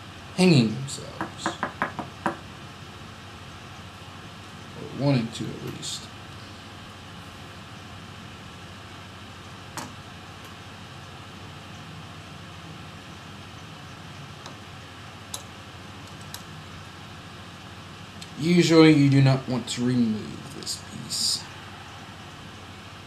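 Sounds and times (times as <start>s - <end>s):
fan-like room hiss: 0.0s - 23.0s.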